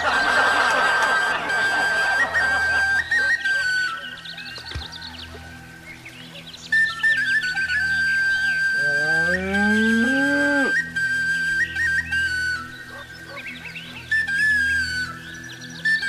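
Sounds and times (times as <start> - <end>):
birds chirping: 0.0 - 16.0
whistle-like melody: 0.0 - 16.0
cow mooing: 8.7 - 10.8.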